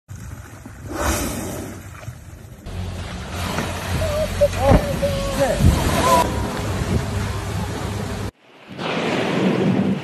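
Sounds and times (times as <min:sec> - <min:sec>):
wind and water rumble: 0:00.1 - 0:10.0
low hum: 0:02.7 - 0:08.4.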